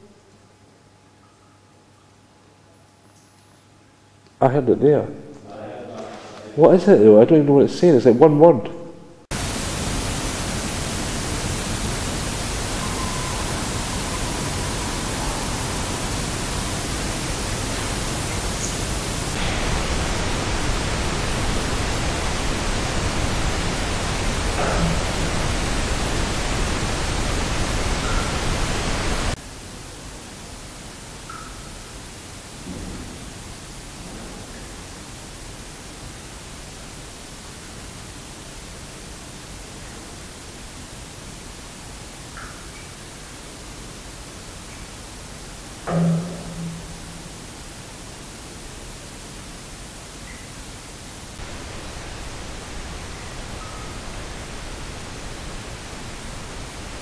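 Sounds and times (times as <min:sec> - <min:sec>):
loud recorder hiss: 0:00.0 - 0:57.0.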